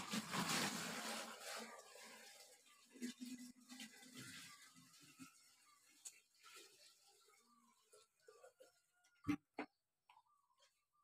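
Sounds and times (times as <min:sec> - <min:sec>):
plastic buckets being handled: 0:00.0 - 0:05.4.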